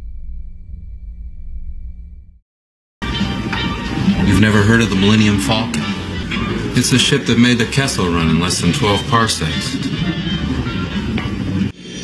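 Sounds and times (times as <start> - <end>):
deep rumbling drone: 0.0 - 2.4, 3.0 - 12.0.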